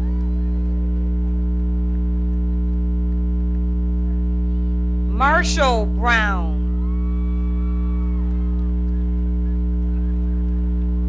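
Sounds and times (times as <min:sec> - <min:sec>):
electrical mains hum: 0:00.0 - 0:11.0
person shouting a cheer: 0:05.2 - 0:08.3.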